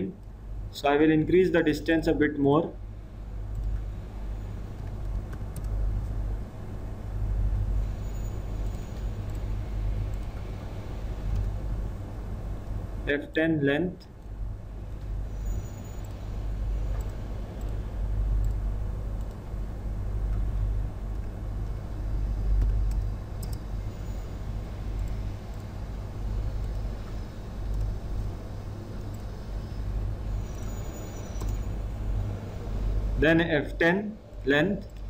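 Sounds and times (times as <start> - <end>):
low background rumble: 0.0 - 35.0
faint clicks: 22.6 - 23.6.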